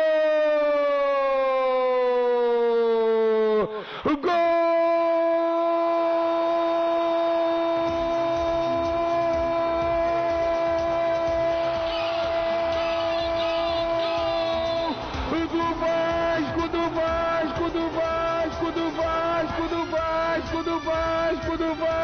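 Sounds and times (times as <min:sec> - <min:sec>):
announcer screaming goal: 0:04.1 - 0:22.0
low background music beat: 0:07.6 - 0:22.0.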